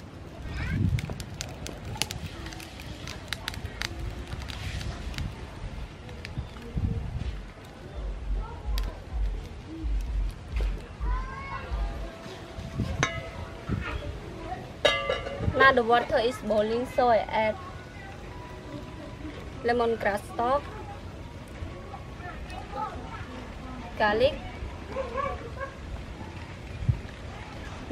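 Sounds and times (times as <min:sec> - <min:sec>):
wind rumble on microphone: 0:00.0 - 0:15.9, 0:24.2 - 0:27.9
faint voices: 0:00.0 - 0:27.9.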